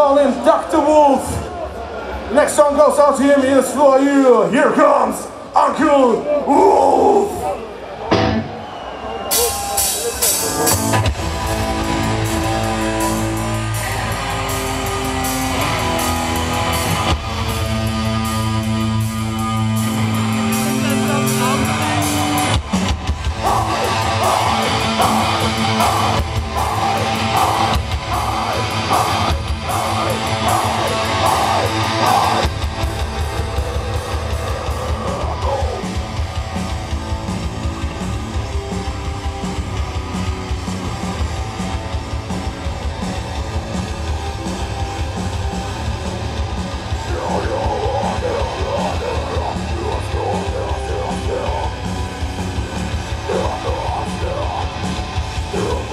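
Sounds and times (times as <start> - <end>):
live heavy metal band playing: 6.5 - 55.9.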